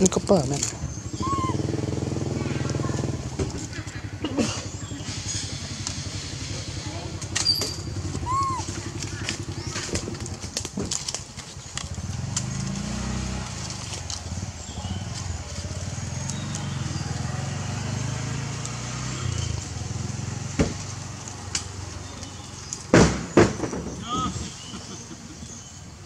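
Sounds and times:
people's voices: 0:00.0 - 0:10.5.

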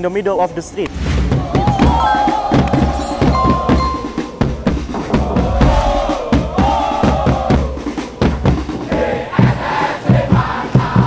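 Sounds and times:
crowd chanting in unison: 0:01.2 - 0:03.9, 0:04.5 - 0:11.0
drums beating a steady rhythm: 0:01.3 - 0:11.0.

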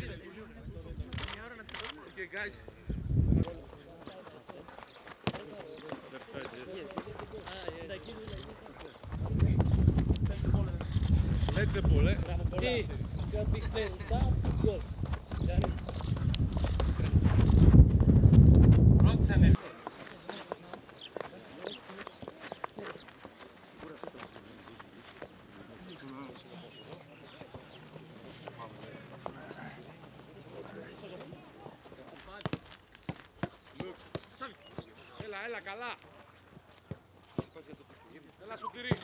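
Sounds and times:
players calling: 0:03.5 - 0:17.5, 0:19.0 - 0:39.0
boots tapping balls on turf: 0:04.0 - 0:08.2, 0:08.8 - 0:35.4, 0:36.5 - 0:37.8
footballs kicked on grass: 0:04.0 - 0:35.5.

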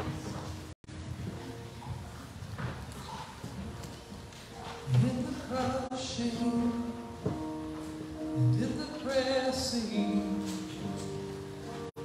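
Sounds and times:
footsteps in church aisle: 0:00.0 - 0:09.1, 0:10.0 - 0:12.0.

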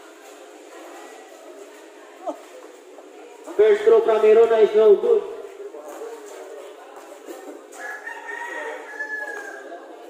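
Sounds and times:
rooster crowing: 0:07.8 - 0:09.8.

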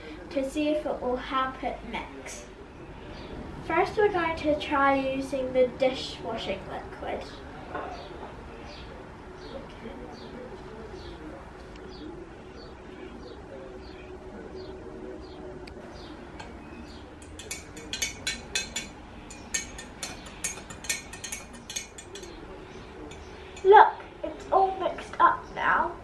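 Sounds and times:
teaspoon clinking against glass: 0:17.2 - 0:22.5.

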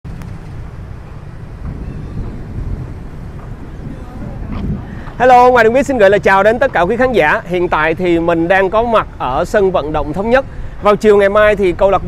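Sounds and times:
faint outdoor background noise: 0:00.0 - 0:12.0
wind buffeting microphone: 0:00.0 - 0:12.0.

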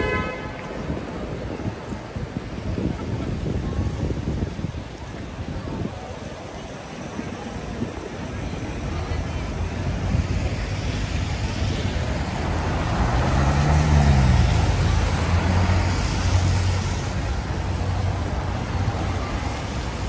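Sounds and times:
car passing on wet road: 0:00.0 - 0:06.2, 0:08.2 - 0:20.0
low rumble of traffic: 0:00.0 - 0:20.0.

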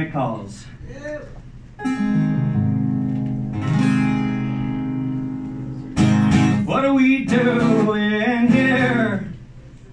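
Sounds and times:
acoustic guitar strumming chords: 0:01.8 - 0:09.4.

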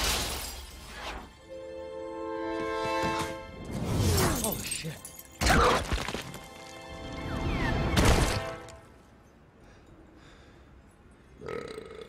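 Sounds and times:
action film music: 0:00.9 - 0:09.0.

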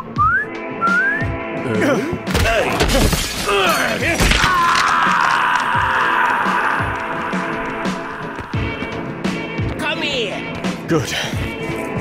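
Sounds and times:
background music: 0:00.0 - 0:12.0
shattering crash of debris: 0:02.3 - 0:05.7.

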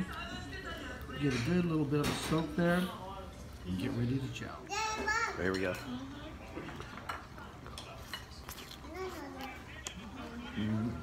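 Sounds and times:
chopsticks and dishes clinking: 0:05.4 - 0:10.0.

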